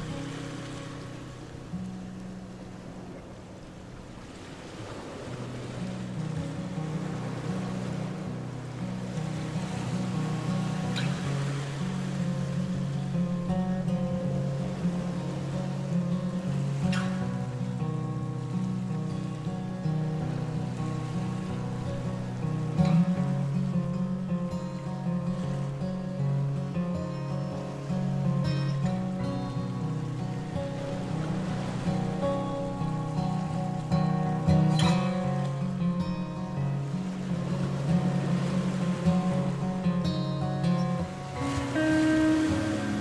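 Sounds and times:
music of slow low notes: 5.4s - 43.0s.

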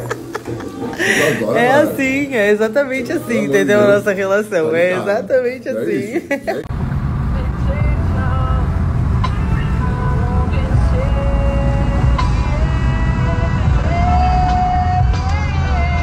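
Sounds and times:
car road and engine rumble: 6.7s - 13.9s
song with singing voice: 7.3s - 16.0s.

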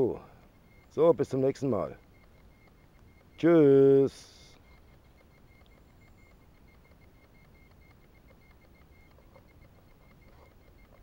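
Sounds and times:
faint outdoor background: 0.0s - 11.0s.

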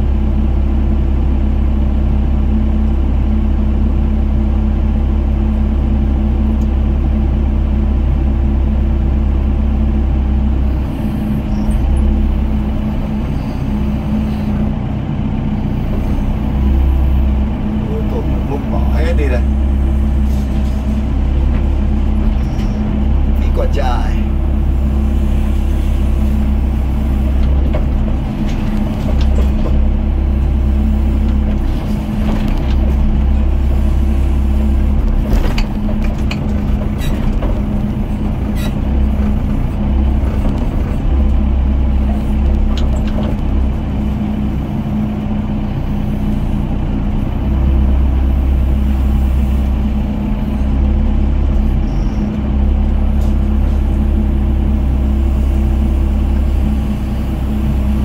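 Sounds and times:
excavator diesel engine running: 0.0s - 58.0s.

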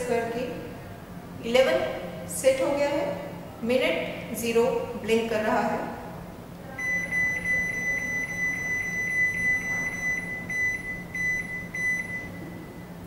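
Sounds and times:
microwave buzzer beeping: 6.8s - 13.0s.

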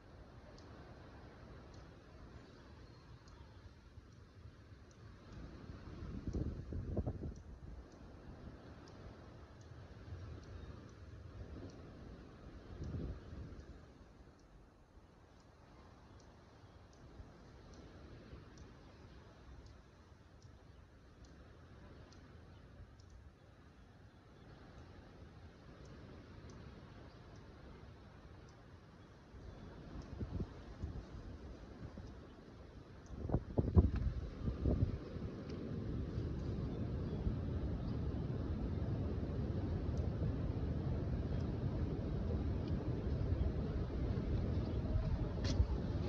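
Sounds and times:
wind buffeting microphone: 5.2s - 9.1s, 29.7s - 46.0s.

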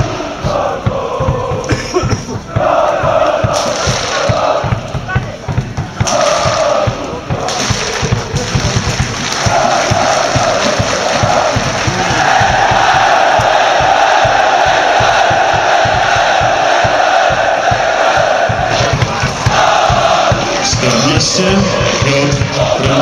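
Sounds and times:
crowd chanting in unison: 0.0s - 23.0s.

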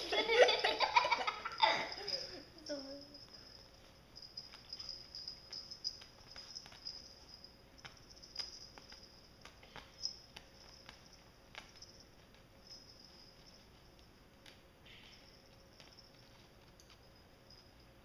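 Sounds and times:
faint high-pitched hiss: 0.0s - 18.0s.

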